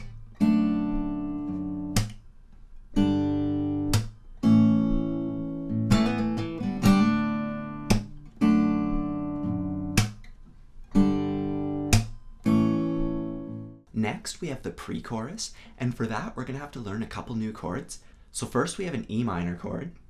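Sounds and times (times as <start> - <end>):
percussive guitar strum-slap: 0.0 - 2.3, 3.0 - 13.8
fingerstyle acoustic guitar: 0.0 - 13.9.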